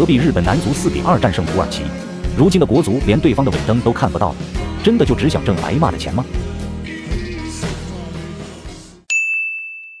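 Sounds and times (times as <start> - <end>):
background music: 0.0 - 9.1.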